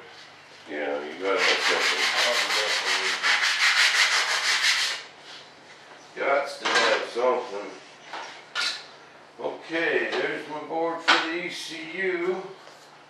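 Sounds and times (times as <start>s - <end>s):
sandpaper rubbing on wood: 1.2s - 5.1s.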